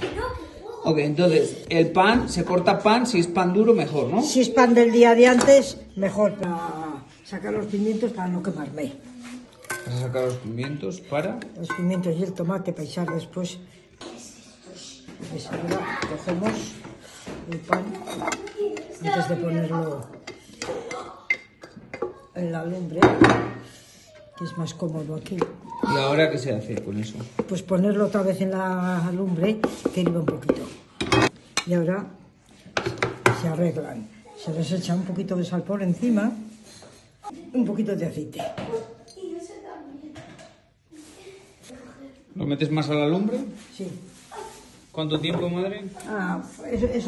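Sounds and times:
spoon knocking on kitchenware: 11.6s - 12.0s.

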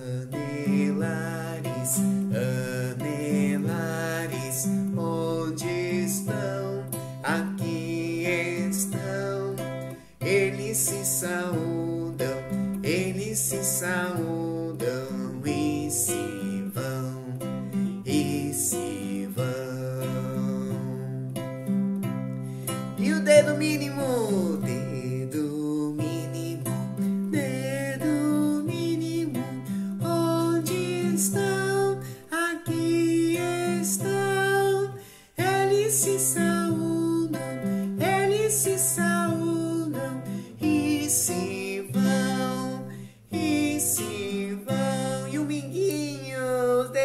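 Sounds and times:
man singing children's song: 0.0s - 21.7s, 22.6s - 47.0s
strummed acoustic guitar: 0.0s - 47.0s.

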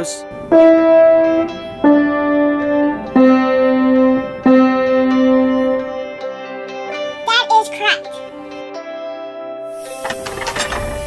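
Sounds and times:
slow piano notes: 0.0s - 7.3s.

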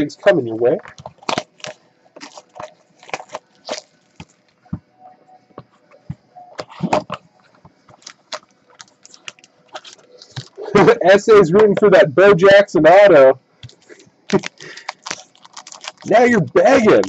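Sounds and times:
wrapping crinkling: 0.7s - 4.6s, 6.6s - 10.8s, 13.6s - 17.0s.

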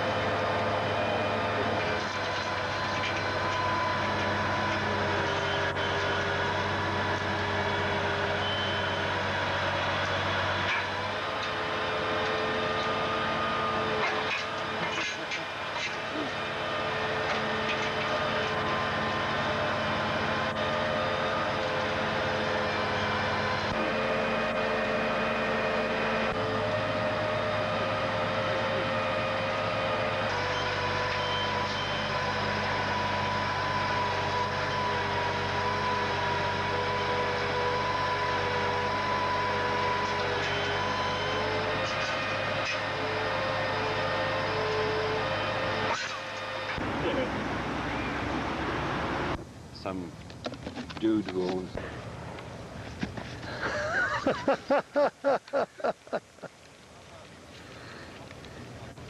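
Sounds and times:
truck diesel engine running: 0.0s - 59.0s.

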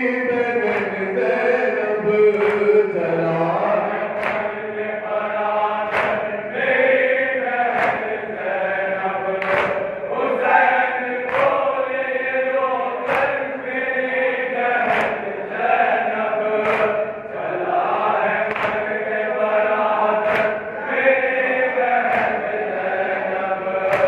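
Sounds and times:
crowd of men chanting in unison: 0.0s - 24.0s.

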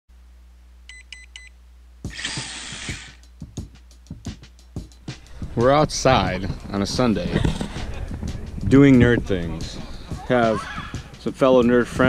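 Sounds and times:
low steady hum: 0.1s - 2.3s, 4.6s - 11.7s
burst of hiss: 2.1s - 3.2s.

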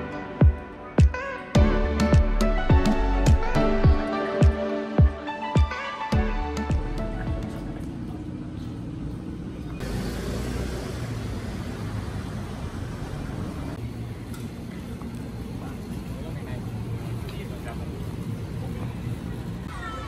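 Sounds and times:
low rumble of traffic: 6.3s - 20.0s
passers-by talking: 13.3s - 20.0s.

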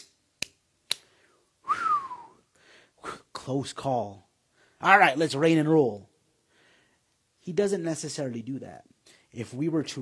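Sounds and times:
man whistling sliding down: 1.6s - 2.4s.

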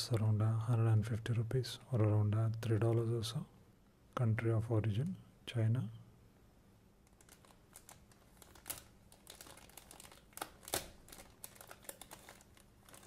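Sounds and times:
plastic bag crinkling: 7.1s - 13.0s.

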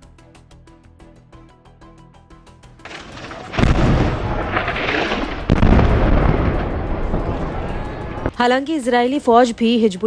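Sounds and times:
rumble of falling debris: 2.9s - 7.5s
loud explosion blasts: 2.9s - 8.3s.

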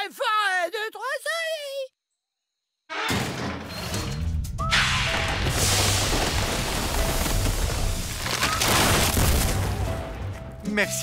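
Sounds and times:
music: 2.9s - 11.0s.

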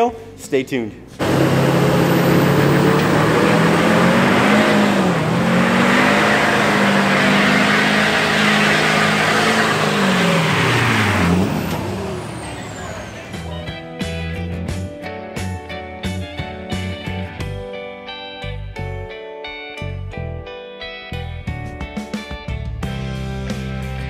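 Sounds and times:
tyres spinning: 1.2s - 13.4s
diesel engine revving hard: 1.2s - 13.7s.

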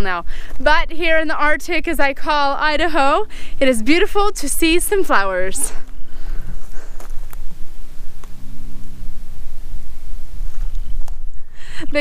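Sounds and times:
wind buffeting microphone: 0.0s - 12.0s
faint hiss: 3.2s - 12.0s.

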